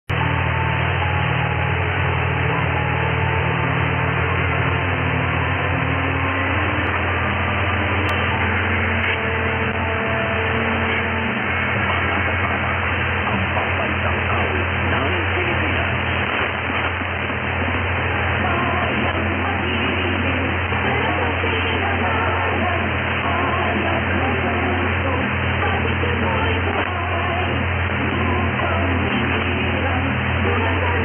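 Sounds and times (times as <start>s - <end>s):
low steady hum: 0.1s - 31.0s
radio static and hiss: 0.1s - 31.0s.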